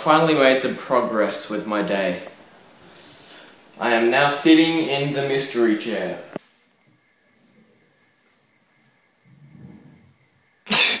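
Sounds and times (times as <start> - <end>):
faint low murmur: 0.0 - 11.0.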